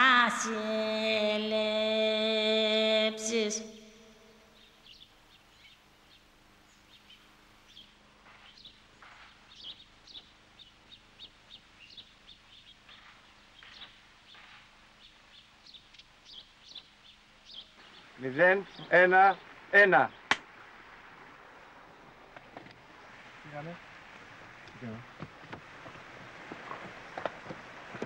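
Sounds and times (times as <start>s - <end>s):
small birds chirping: 3.3s - 20.4s.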